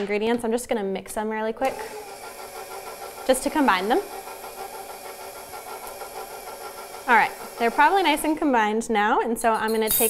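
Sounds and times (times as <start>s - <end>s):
stand mixer motor running: 1.7s - 8.6s.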